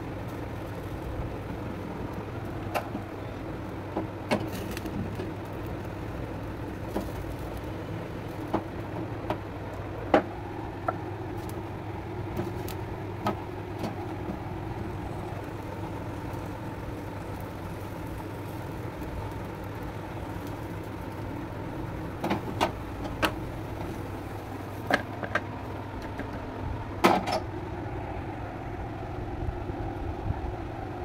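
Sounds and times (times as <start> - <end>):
gas burner flame rushing: 0.0 - 31.0.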